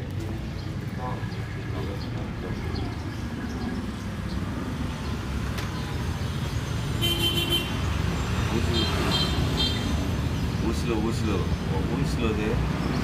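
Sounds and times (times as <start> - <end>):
road traffic rumble: 0.0 - 13.0
vehicle horn toot: 7.0 - 7.8.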